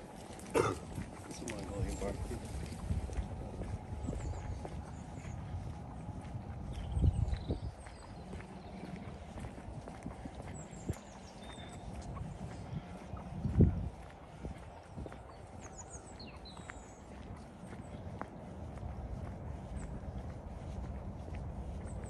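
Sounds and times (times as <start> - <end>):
footsteps on paved path: 0.0 - 22.0
small birds chirping: 0.0 - 22.0
wind rumble on microphone: 0.0 - 22.0.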